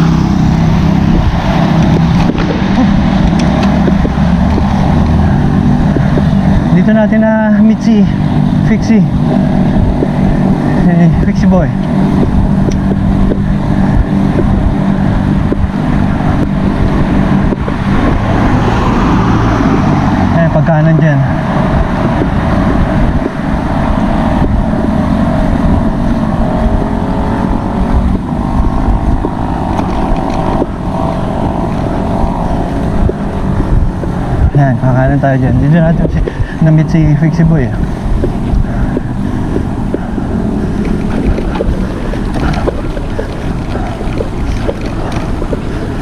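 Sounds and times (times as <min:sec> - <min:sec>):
wind buffeting microphone: 0:00.0 - 0:46.0.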